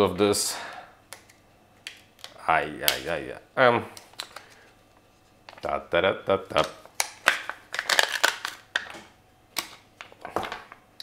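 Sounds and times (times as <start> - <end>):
plastic tube crinkling: 6.5 - 9.0.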